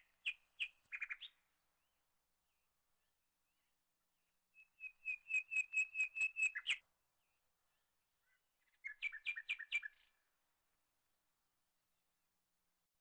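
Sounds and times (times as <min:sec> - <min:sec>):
bird chirping: 0:00.0 - 0:01.4, 0:04.6 - 0:06.8, 0:07.7 - 0:10.2.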